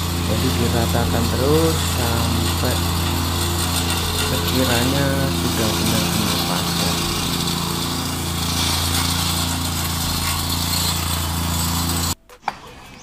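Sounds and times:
plate compactor engine running: 0.0s - 12.2s.

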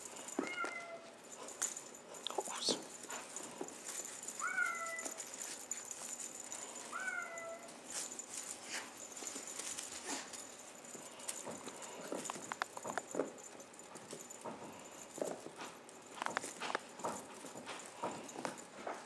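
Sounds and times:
kittens pouncing on carpet: 0.0s - 19.0s.

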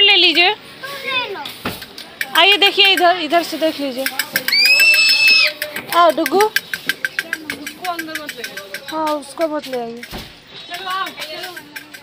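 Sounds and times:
fast even clicking: 1.8s - 10.2s
shrill whistle tone: 4.5s - 5.6s.

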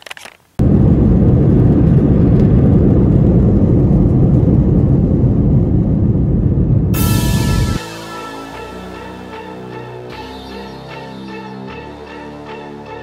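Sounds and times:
airliner cabin rumble: 0.6s - 7.9s.

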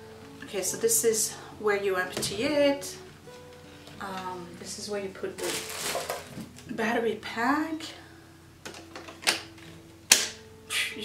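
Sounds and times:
battery pack clicking into handle: 8.6s - 9.5s, 10.1s - 10.4s.

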